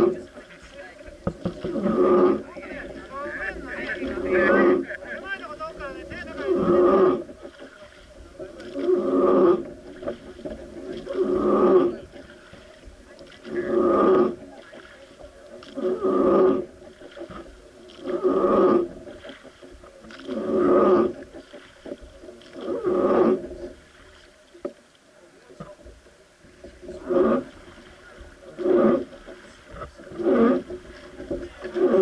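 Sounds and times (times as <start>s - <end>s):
wooden oar creaking in oarlock: 0.0s - 24.9s, 25.6s - 32.0s.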